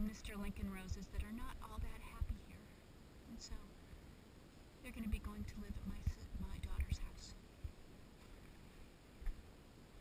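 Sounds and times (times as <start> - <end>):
woman speaking softly: 0.0 - 3.8, 4.8 - 7.4.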